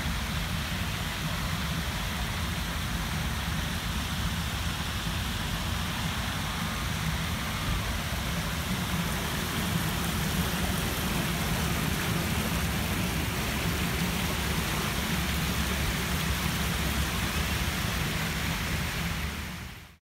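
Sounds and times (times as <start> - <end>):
fountain water rushing: 0.0 - 20.0.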